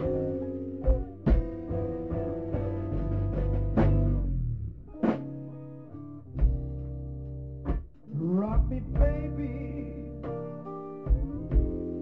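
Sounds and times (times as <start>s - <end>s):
electric blues band playing: 0.0s - 12.0s.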